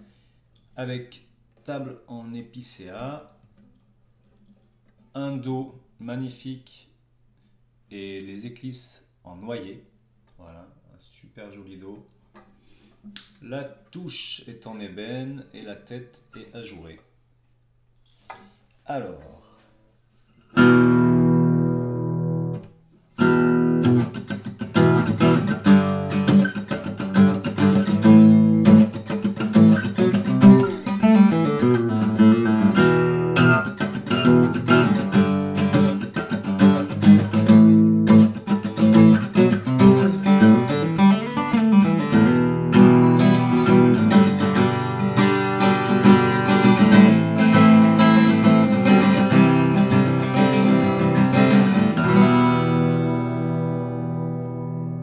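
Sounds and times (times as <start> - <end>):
acoustic guitar playing: 20.5 - 55.0.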